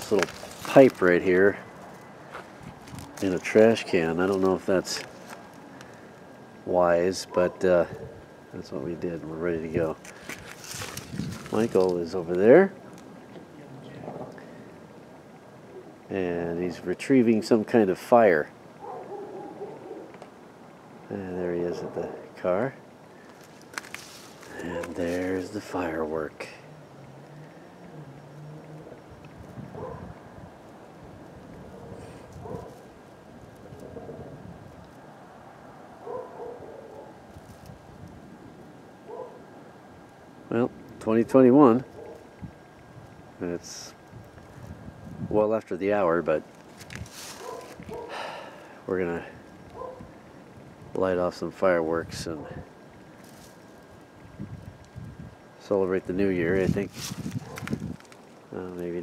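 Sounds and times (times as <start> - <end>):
faint rustle: 0.0 - 6.6, 9.2 - 16.0, 21.8 - 40.2, 46.4 - 50.9, 52.4 - 59.0
low background hum and hiss: 0.0 - 59.0
distant dog barking: 7.2 - 8.3, 18.8 - 20.2, 21.7 - 22.3, 24.6 - 25.1, 27.3 - 30.2, 31.6 - 32.8, 36.0 - 37.2, 39.0 - 39.5, 41.8 - 42.4, 47.4 - 48.4, 49.7 - 50.1, 57.4 - 57.7.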